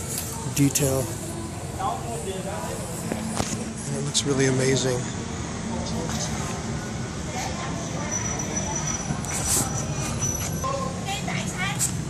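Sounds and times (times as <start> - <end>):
low rumble of road traffic: 0.0 - 12.0.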